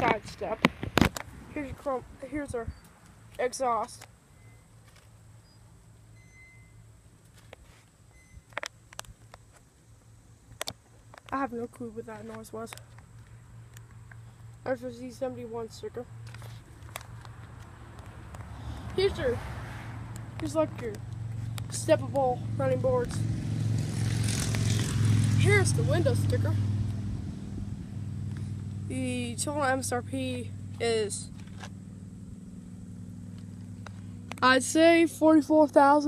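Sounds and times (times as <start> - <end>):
distant highway traffic hum: 0.0 - 36.0
vehicle engine idling: 0.0 - 36.0
faint high beeps: 4.3 - 4.8, 5.4 - 6.9, 8.1 - 8.5.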